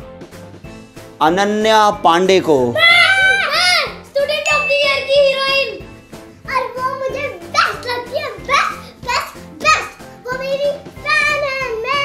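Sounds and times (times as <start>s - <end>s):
background music: 0.0s - 12.0s
children shouting excitedly: 2.7s - 5.9s, 6.5s - 12.0s.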